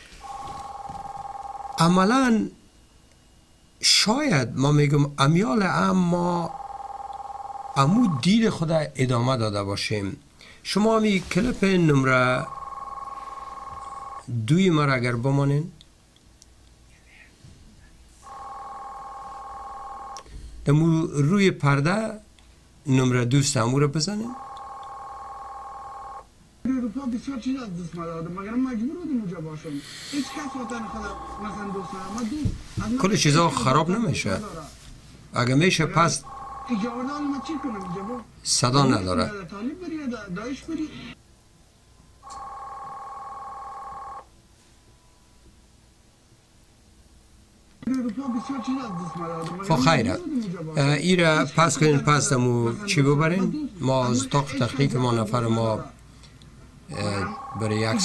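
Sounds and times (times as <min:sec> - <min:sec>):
telephone ringing: 0:00.2 - 0:02.3, 0:05.9 - 0:08.4, 0:11.6 - 0:14.3, 0:18.2 - 0:20.3, 0:24.2 - 0:26.3, 0:30.1 - 0:32.4, 0:35.9 - 0:38.3, 0:42.2 - 0:44.3, 0:48.1 - 0:50.2, 0:56.9 - 0:58.0
steady electronic tone: 0:30.1 - 0:32.3.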